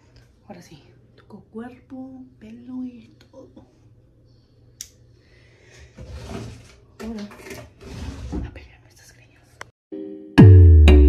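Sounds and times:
finger snap: 0:04.8 - 0:05.0.

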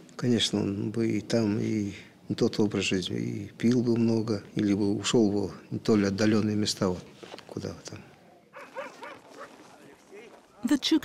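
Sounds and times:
faint dog yips: 0:08.6 - 0:09.6.

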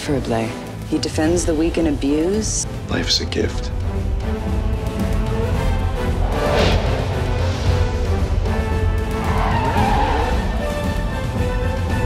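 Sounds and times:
drama theme music: 0:00.0 - 0:12.0
car tyres skidding: 0:06.2 - 0:11.4.

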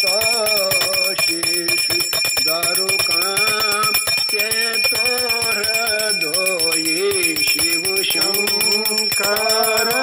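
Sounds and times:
hand bell rung rapidly: 0:00.0 - 0:10.0.

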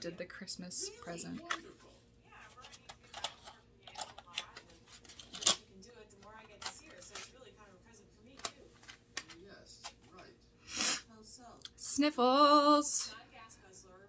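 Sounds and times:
pencils clicking together: 0:02.6 - 0:05.6.

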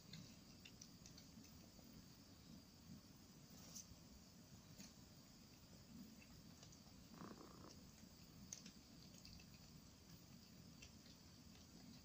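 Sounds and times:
cat chewing: 0:00.0 - 0:02.2, 0:04.7 - 0:12.0
high insect hum: 0:00.0 - 0:12.0.

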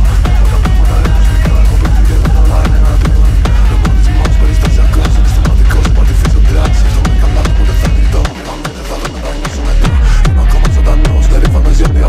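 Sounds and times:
heavy bass: 0:00.0 - 0:12.0
hi-hats: 0:00.0 - 0:12.0
techno kick drum beat: 0:00.0 - 0:12.0.

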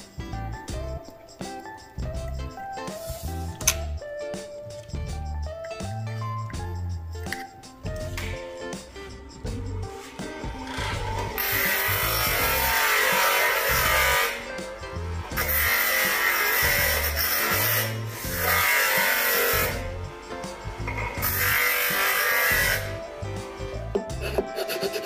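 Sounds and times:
background music: 0:00.0 - 0:25.0.

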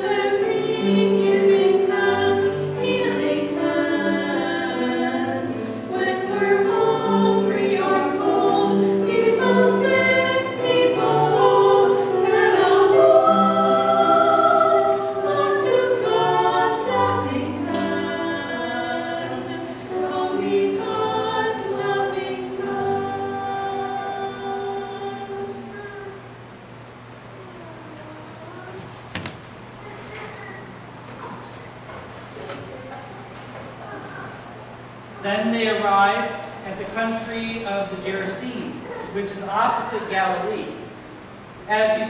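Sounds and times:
women singing in harmony: 0:00.0 - 0:25.8.

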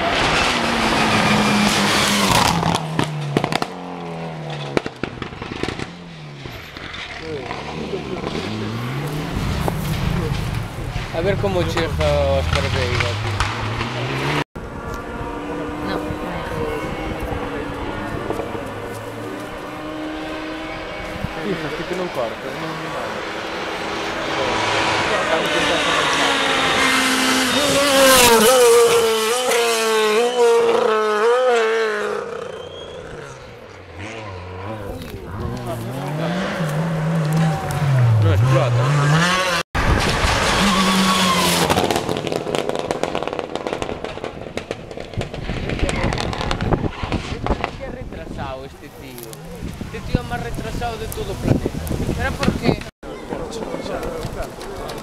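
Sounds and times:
rally car engine revving: 0:00.0 - 0:48.2.

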